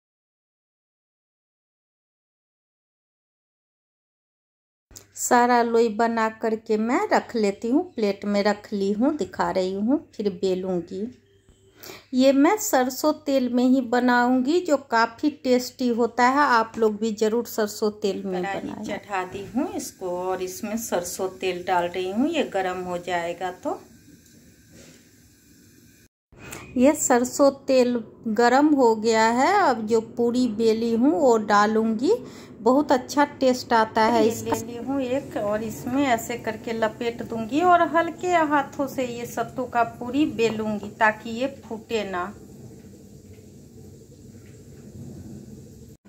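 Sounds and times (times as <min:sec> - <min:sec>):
faint steady hiss: 0:18.2 - 0:27.4, 0:34.0 - 0:46.0.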